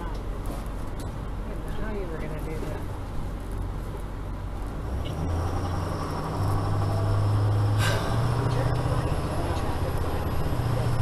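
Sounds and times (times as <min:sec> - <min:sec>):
motorhome engine droning: 0:00.0 - 0:11.0.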